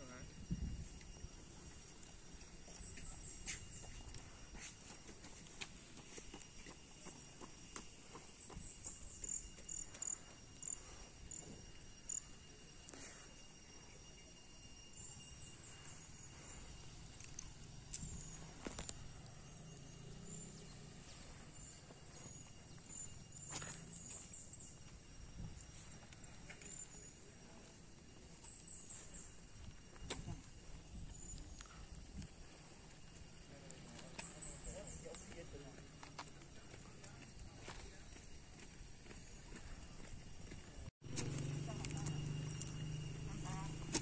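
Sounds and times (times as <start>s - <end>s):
high insect whine: 0.0s - 44.0s.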